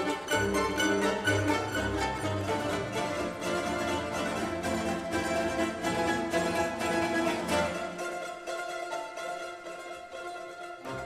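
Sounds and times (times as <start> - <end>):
mandolin orchestra playing: 0.0 - 11.0.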